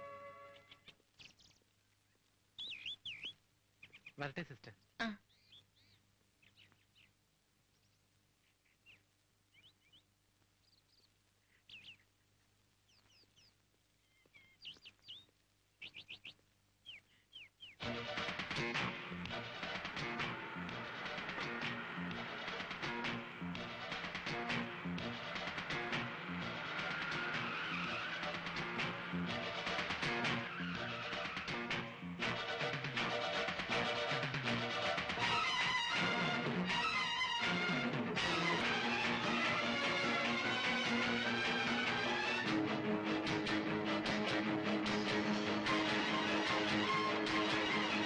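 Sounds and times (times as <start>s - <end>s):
film music with a beat: 17.8s - 48.0s.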